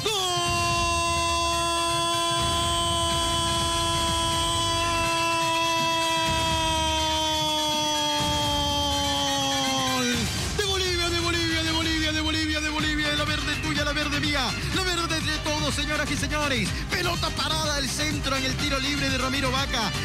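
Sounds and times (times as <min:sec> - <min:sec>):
commentator's long goal shout: 0:00.0 - 0:20.0.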